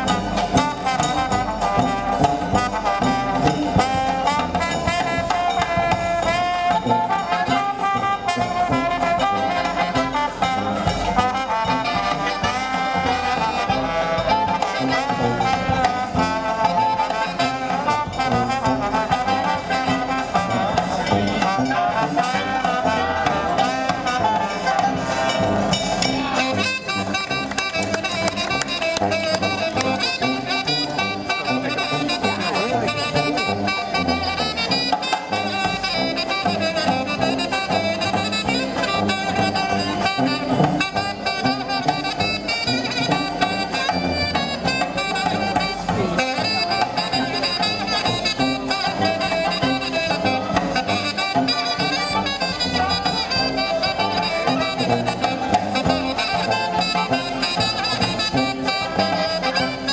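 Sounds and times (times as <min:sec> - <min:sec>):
jazz band playing live: 0:00.0 - 0:59.9.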